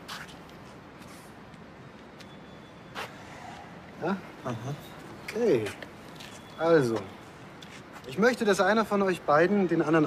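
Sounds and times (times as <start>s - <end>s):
distant city traffic hum: 0.0s - 10.0s.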